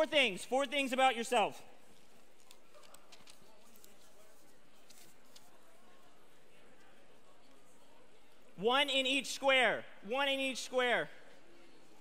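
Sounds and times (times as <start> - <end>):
audience rustling and murmuring: 1.2 - 8.5.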